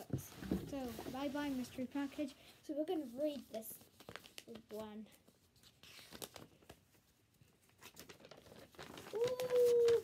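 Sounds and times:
paper booklet rustling: 0.2s - 10.0s.

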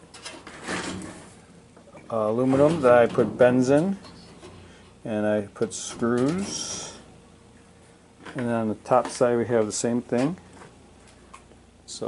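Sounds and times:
soft rubbing and scraping: 2.1s - 5.0s.

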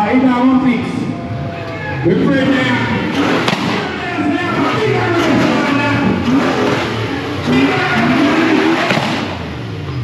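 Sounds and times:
car engine revving hard: 2.1s - 10.0s
tyres spinning: 2.4s - 9.5s.

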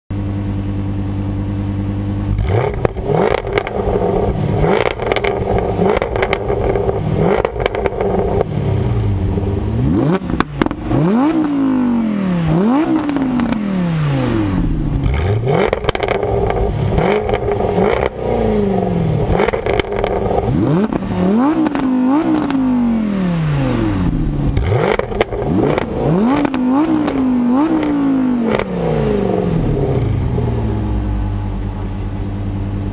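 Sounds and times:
car engines revving: 0.2s - 32.9s
exhaust cracks and pops: 2.4s - 4.0s, 4.7s - 8.5s, 10.3s - 10.9s, 15.0s - 18.1s, 19.4s - 20.5s, 24.5s - 28.7s.

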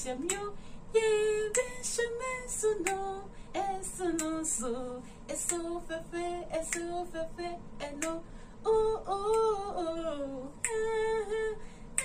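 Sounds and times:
woman singing a hymn: 0.0s - 12.0s.

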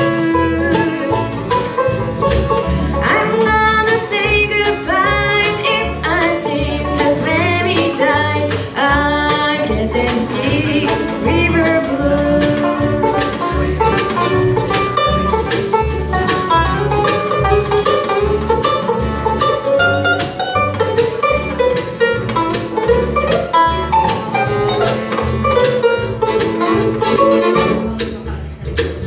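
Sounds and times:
bluegrass band playing: 0.0s - 29.0s
upright bass notes: 0.0s - 29.0s.

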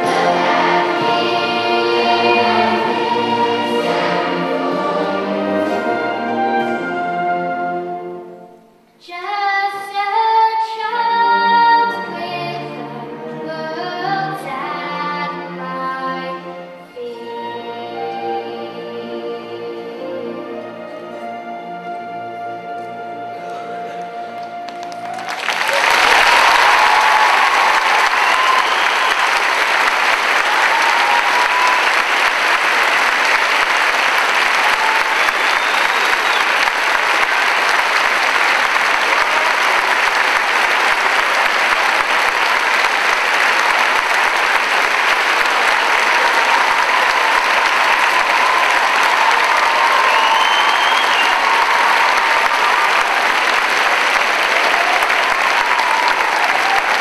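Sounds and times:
audience applauding: 0.0s - 7.1s, 23.4s - 57.0s.

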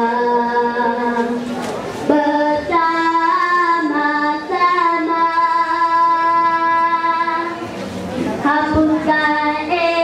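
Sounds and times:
children singing together: 0.0s - 1.5s, 2.1s - 7.7s, 8.4s - 10.0s.

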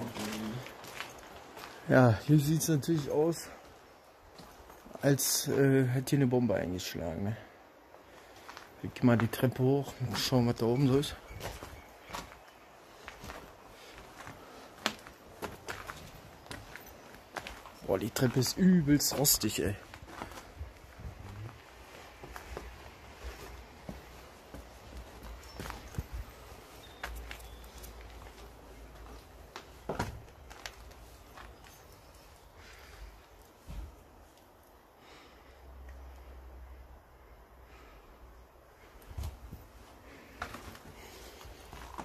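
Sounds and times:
footsteps on metal stairway: 13.1s - 31.7s, 40.3s - 42.0s.

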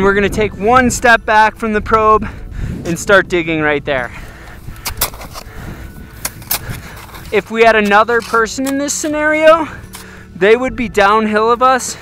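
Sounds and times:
shovels digging into snow: 4.7s - 10.2s.

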